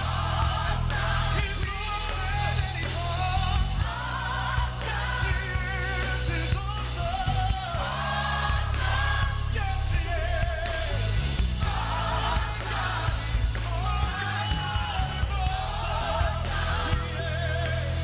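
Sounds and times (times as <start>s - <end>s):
band with bass line: 0.0s - 18.0s
choir singing: 0.0s - 18.0s
man singing lead: 1.3s - 4.0s, 4.9s - 8.1s, 9.1s - 11.2s, 13.2s - 18.0s.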